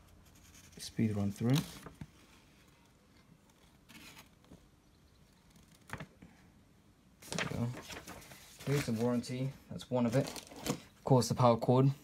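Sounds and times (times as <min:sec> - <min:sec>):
paper pages turning: 0:00.5 - 0:04.6, 0:07.2 - 0:09.5.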